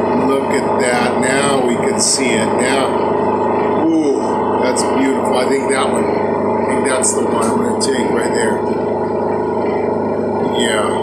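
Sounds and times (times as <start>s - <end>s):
low drone of held tones: 0.0s - 11.0s
person speaking indistinctly: 0.1s - 3.0s, 3.8s - 8.8s.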